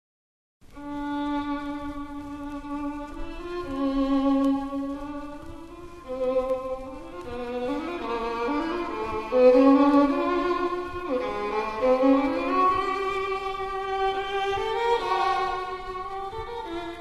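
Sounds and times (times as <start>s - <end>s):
violin slow melody: 0.6s - 17.0s.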